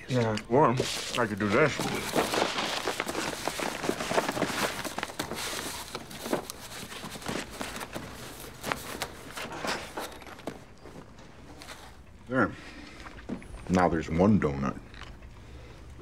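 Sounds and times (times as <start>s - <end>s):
cardboard box crinkling: 0.6s - 10.6s.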